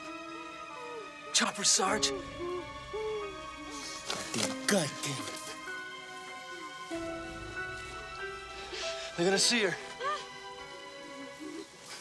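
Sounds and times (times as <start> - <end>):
sustained music: 0.0 - 12.0.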